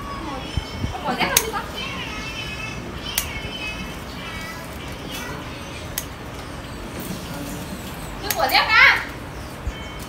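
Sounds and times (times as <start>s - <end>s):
child calling out: 0.0s - 0.5s.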